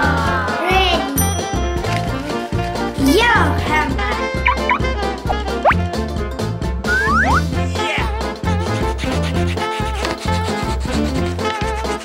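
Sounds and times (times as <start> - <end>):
children's background music: 0.0 - 12.0
cartoon warbling sound effect: 4.4 - 5.8, 6.9 - 7.5
short upward chirps: 4.5 - 4.8.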